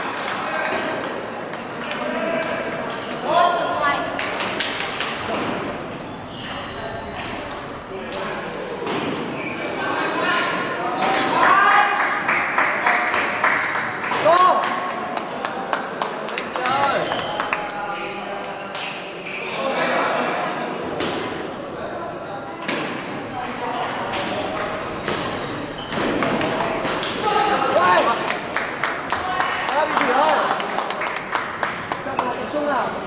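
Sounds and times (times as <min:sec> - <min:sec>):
table tennis balls clicking: 0:00.0 - 0:03.3, 0:04.1 - 0:09.3, 0:22.3 - 0:29.2
people's voices: 0:00.0 - 0:12.2.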